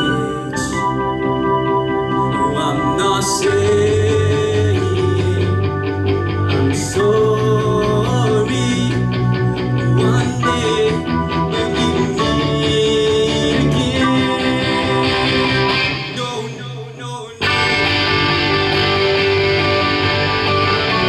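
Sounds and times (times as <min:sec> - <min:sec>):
rock band playing: 0:00.0 - 0:16.6, 0:17.4 - 0:21.0
electric guitars: 0:00.0 - 0:21.0.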